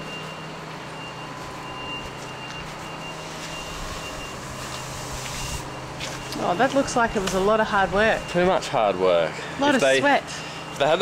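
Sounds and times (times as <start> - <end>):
reversing alarm beeping: 0.0 - 11.0
vehicle engine running: 0.0 - 11.0.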